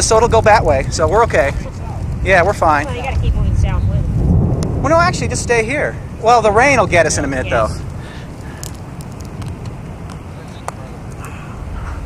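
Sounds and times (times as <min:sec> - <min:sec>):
distant roar of tornado: 0:00.0 - 0:12.0
low rumble of wind: 0:00.0 - 0:12.0
faint clicks: 0:07.8 - 0:11.4
faint voices: 0:10.2 - 0:12.0.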